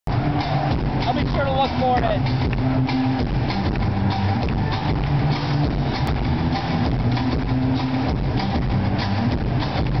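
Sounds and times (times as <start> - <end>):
punk band playing live: 0.1 - 10.0.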